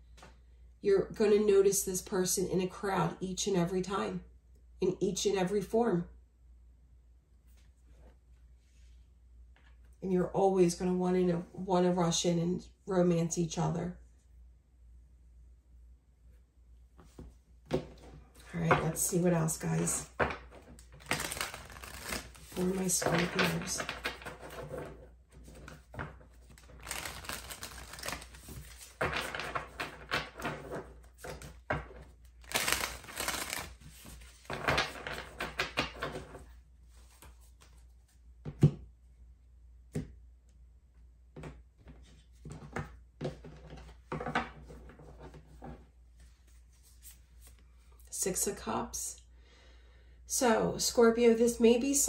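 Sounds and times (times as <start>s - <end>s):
cards being shuffled: 17.8s - 38.2s.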